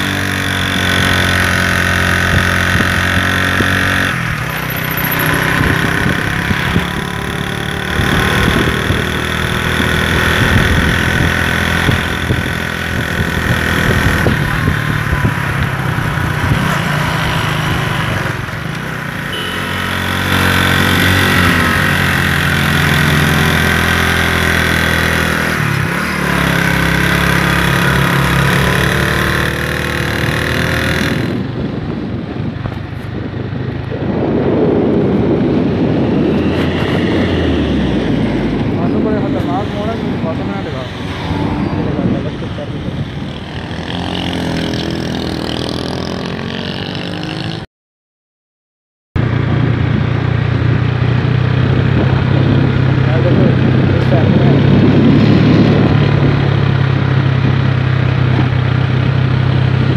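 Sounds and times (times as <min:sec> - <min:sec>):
motorcycle engine running: 0:00.0 - 0:47.6, 0:49.2 - 0:59.9
road and wind noise: 0:00.0 - 0:47.7, 0:49.2 - 0:59.9.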